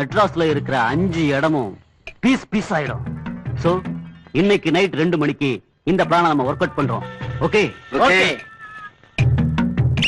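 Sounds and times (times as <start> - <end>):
man speaking animatedly: 0.0 - 8.4
background film music: 0.0 - 10.0.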